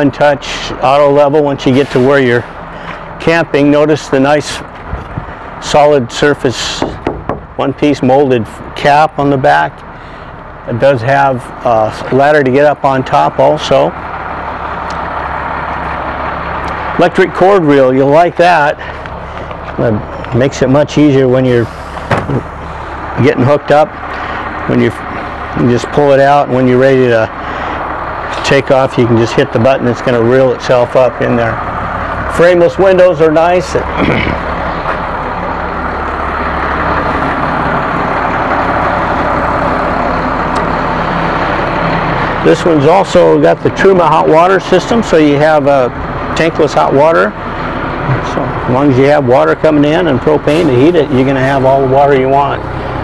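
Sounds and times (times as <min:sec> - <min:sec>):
vehicle hiss and low hum: 0:00.0 - 0:53.0.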